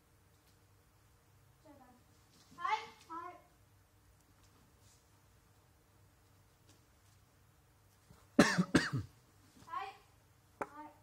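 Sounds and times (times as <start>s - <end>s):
soft voiced sound: 1.6s - 3.6s, 8.8s - 11.0s.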